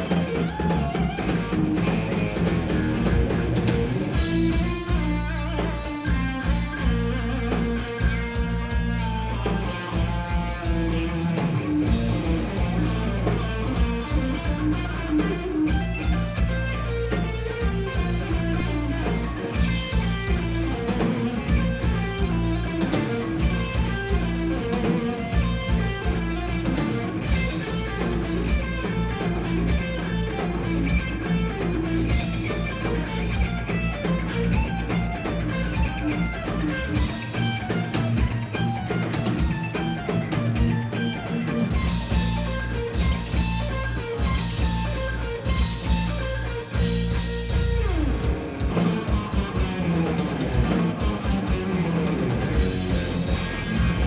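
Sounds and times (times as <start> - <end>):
bass guitar: 0.0 - 54.0
drum kit hits: 0.0 - 54.0
electric guitar: 0.0 - 54.0
guitar note sliding down: 0.0 - 54.0.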